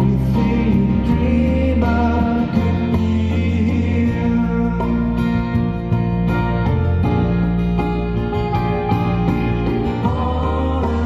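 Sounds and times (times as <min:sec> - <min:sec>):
acoustic guitar: 0:00.0 - 0:11.0
electric bass: 0:00.0 - 0:11.0
keyboard: 0:00.0 - 0:11.0.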